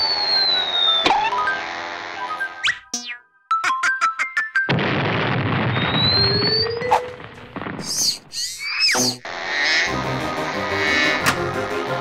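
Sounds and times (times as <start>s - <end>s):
gliding whistle: 0.0s - 1.4s
cartoon explosion boom: 4.7s - 8.4s
short high squeaks: 7.8s - 9.3s.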